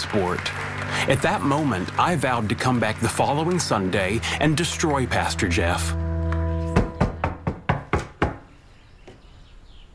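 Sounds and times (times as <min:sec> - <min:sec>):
knocking on a door: 0:06.8 - 0:08.5.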